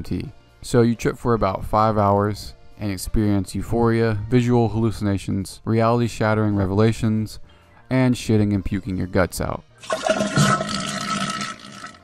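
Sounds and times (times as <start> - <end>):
toilet flushing: 9.8 - 12.0.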